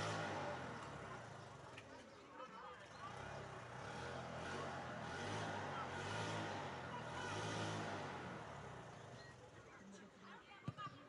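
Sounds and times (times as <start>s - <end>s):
vehicle passing by: 0.0s - 1.5s, 3.0s - 9.0s.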